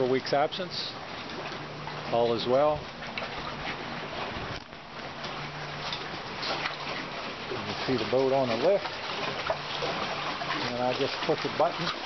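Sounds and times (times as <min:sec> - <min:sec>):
low engine hum: 0:00.0 - 0:12.0
water slapping against a dock: 0:00.0 - 0:12.0.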